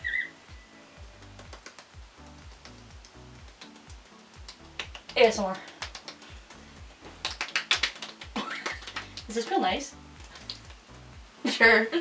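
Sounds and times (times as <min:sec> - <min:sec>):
faint background music: 0:00.0 - 0:12.0
fingertips tapping on skin: 0:01.1 - 0:09.4, 0:10.1 - 0:10.9.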